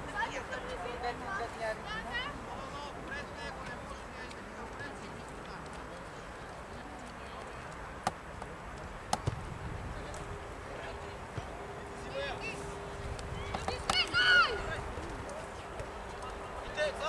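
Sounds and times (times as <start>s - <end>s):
steady low rumble: 8.7s - 17.0s.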